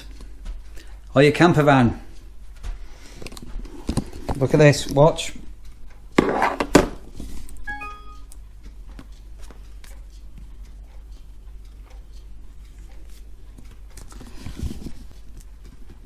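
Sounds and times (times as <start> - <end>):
smartphone chime: 7.7 - 8.3.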